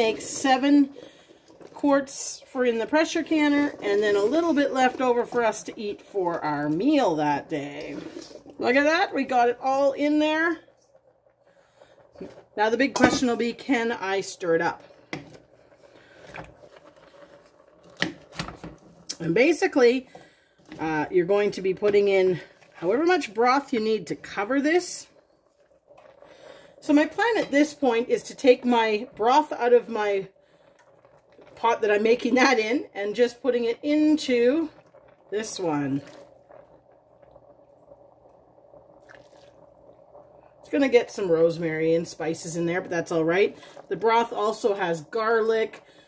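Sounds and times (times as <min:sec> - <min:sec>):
ladle scooping broth: 0:07.8 - 0:08.6, 0:36.0 - 0:37.4, 0:38.9 - 0:40.2.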